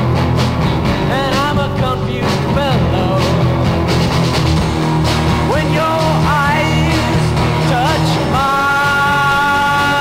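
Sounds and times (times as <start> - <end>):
garage rock band playing: 0.0 - 10.0.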